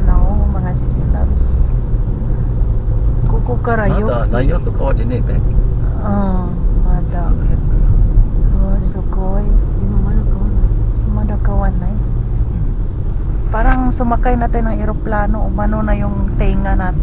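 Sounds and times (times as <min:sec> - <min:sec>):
voices talking: 0:00.0 - 0:01.8, 0:03.2 - 0:12.8, 0:13.4 - 0:17.0
car road and engine rumble: 0:00.0 - 0:17.0.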